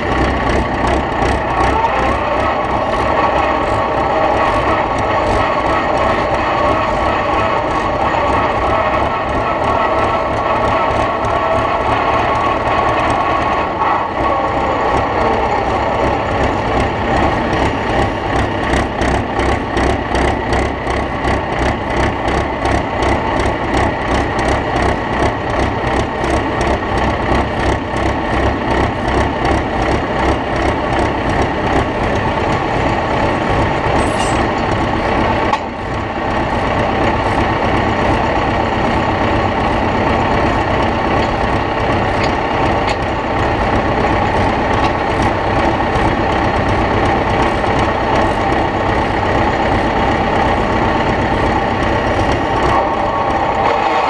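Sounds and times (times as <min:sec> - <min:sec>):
tractor engine running hard: 0:00.0 - 0:54.0.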